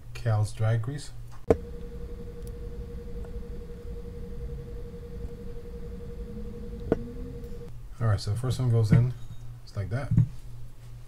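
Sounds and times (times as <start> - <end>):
steady hum: 1.5 - 7.7.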